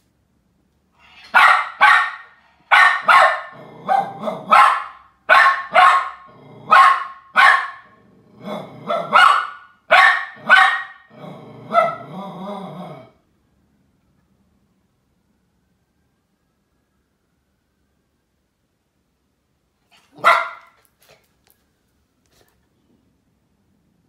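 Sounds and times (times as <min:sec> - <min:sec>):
small dog barking: 0:01.1 - 0:11.1, 0:11.7 - 0:12.1, 0:19.9 - 0:21.2
dog growling: 0:03.5 - 0:04.5, 0:06.2 - 0:06.8, 0:07.9 - 0:09.2, 0:11.1 - 0:13.2.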